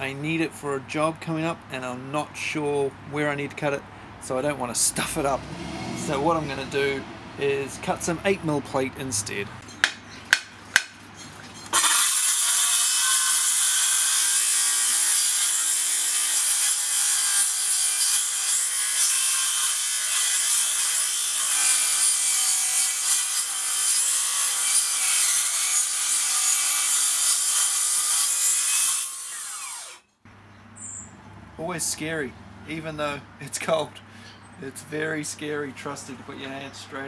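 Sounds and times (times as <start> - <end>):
circular saw cutting steel: 11.7 - 30.0.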